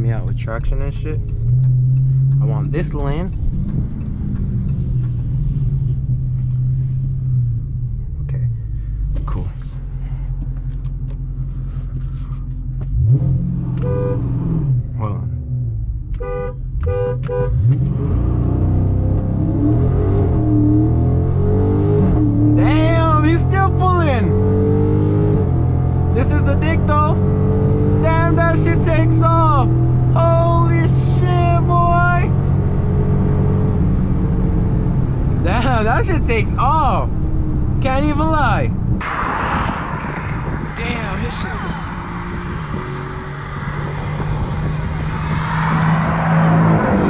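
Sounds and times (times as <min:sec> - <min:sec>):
car engine accelerating: 0:00.0 - 0:47.0
car horn toots: 0:13.8 - 0:14.3, 0:16.2 - 0:17.7.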